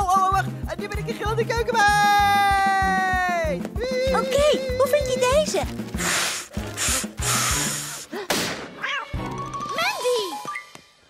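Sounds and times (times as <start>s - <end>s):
background music: 0.0s - 11.0s
paper bag bursting pop: 5.7s - 8.8s
blowing into paper bag: 5.8s - 8.2s.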